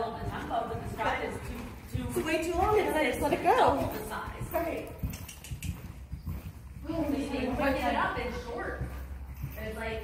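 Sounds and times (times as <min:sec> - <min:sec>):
horse hoofbeats on sand: 0:00.0 - 0:10.0.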